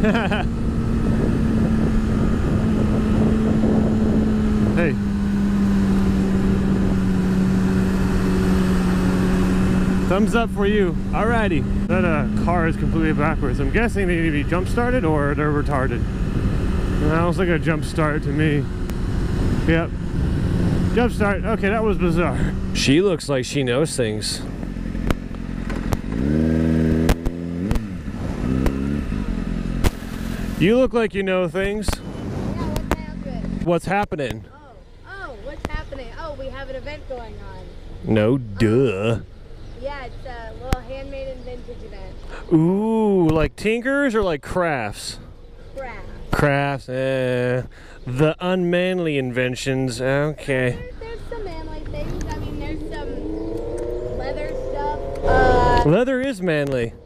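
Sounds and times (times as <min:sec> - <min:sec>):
motorcycle engine cruising: 0:00.0 - 0:57.0
wind rushing: 0:00.6 - 0:10.1.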